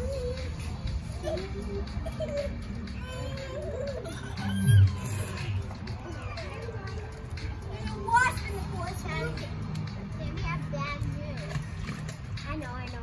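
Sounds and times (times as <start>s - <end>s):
children's voices and squeals: 0.0s - 11.5s
steady low hum: 3.7s - 6.1s.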